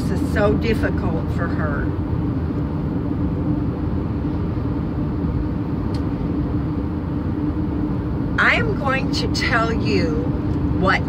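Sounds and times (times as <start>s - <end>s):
road and engine rumble in vehicle: 0.0s - 11.0s.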